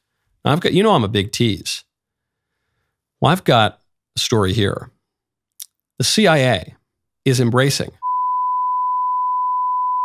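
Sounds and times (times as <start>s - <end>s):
censor bleep: 8.0s - 10.0s.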